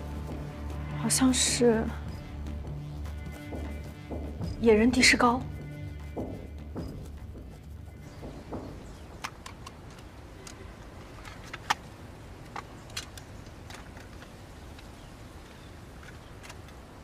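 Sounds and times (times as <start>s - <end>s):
plastic cassette case clicks: 8.9s - 16.8s.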